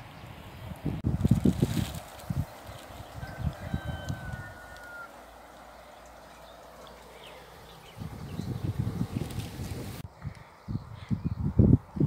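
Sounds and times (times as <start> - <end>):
wind gusting on microphone: 0.0 - 12.0
small stream hissing: 4.5 - 10.0.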